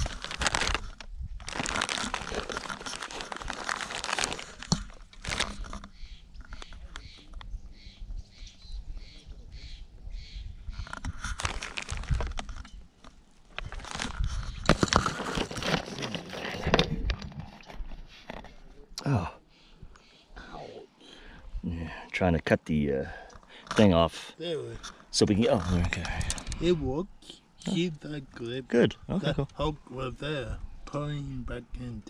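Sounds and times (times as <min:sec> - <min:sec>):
plastic packaging crinkling: 0:00.0 - 0:05.8, 0:11.0 - 0:12.7, 0:13.4 - 0:16.8.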